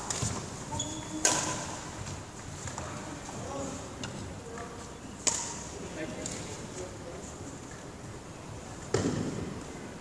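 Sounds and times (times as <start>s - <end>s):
racket striking shuttlecock: 1.1s - 1.7s, 5.2s - 5.6s.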